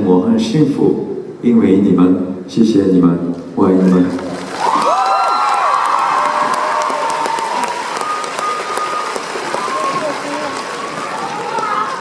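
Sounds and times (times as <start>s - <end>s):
audience applauding: 4.1s - 12.0s.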